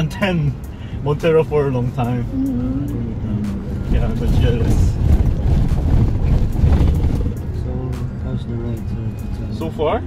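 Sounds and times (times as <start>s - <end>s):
engine and tyre rumble: 0.0s - 10.0s.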